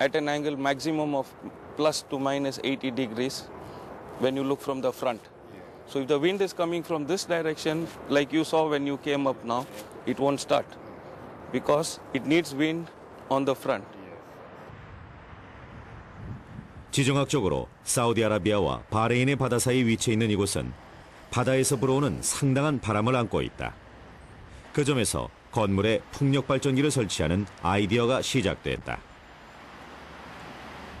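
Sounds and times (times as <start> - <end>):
rushing wind: 0.0 - 31.0.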